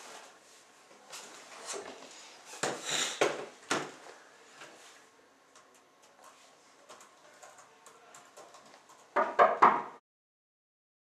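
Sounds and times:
laptop keyboard typing: 0:05.6 - 0:09.2.

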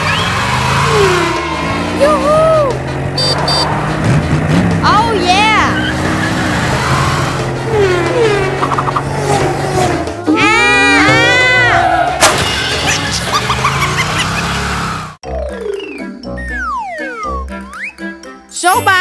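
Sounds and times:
car engine: 0:00.0 - 0:15.2
background music: 0:00.2 - 0:14.2, 0:15.2 - 0:19.0.

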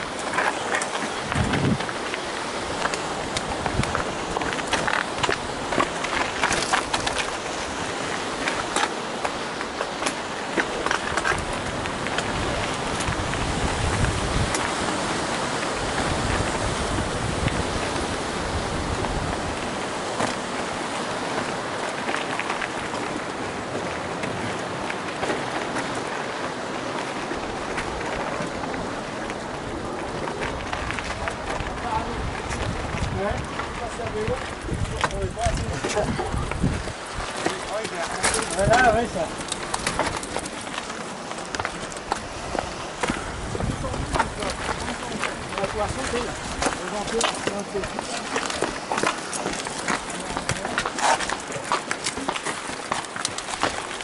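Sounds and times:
steady rushing noise: 0:00.0 - 0:54.0
mountain bike rattling and knocking: 0:27.3 - 0:42.2, 0:43.5 - 0:54.0.

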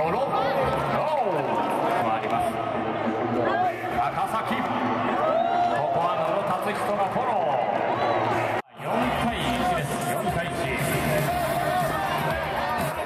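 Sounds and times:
crowd noise: 0:00.0 - 0:13.0.

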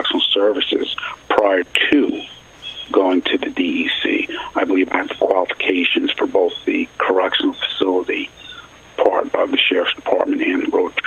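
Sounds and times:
man talking over telephone line: 0:00.0 - 0:11.0.

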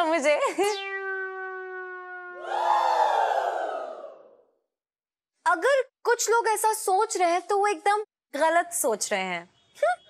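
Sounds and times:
held note sagging in pitch: 0:00.6 - 0:03.2.

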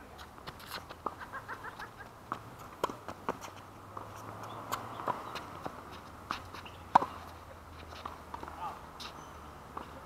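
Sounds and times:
tennis ball struck and bouncing: 0:02.3 - 0:10.0.

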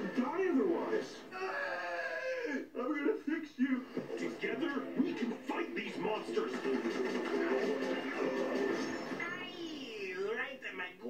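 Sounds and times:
film trailer music: 0:03.9 - 0:09.5.

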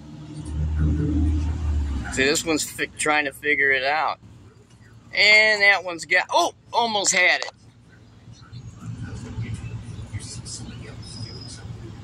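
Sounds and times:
vehicle engine rumbling: 0:00.0 - 0:12.0.

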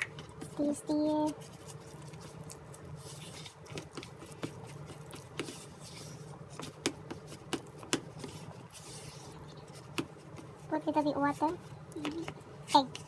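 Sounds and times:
spatula scraping batter in bowl: 0:00.0 - 0:12.2.

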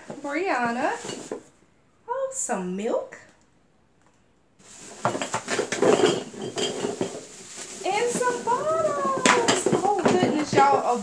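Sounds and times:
plastic bottles clinking in box: 0:04.7 - 0:11.0
person speaking: 0:07.8 - 0:11.0.

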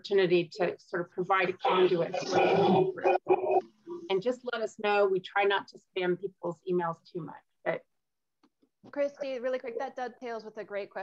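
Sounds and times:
person speaking: 0:01.3 - 0:04.2
rough vocal sound: 0:01.6 - 0:04.1.

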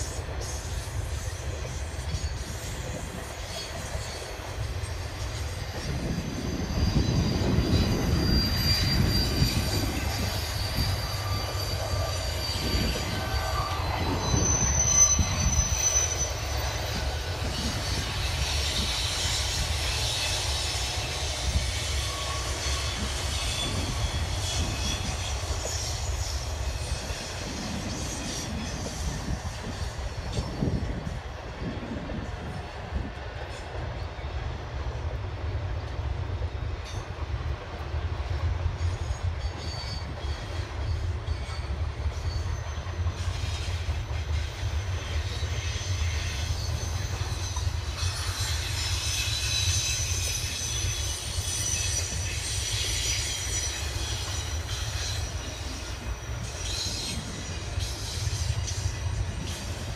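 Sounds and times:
high-pitched wheel squeal: 0:00.0 - 0:32.6, 0:38.8 - 0:59.9
train wheels rumbling on rail: 0:00.0 - 0:59.9.

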